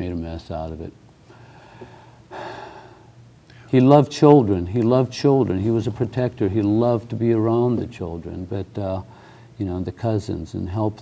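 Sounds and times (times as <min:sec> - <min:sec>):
man breathing in: 0:01.3 - 0:03.7, 0:09.1 - 0:09.6.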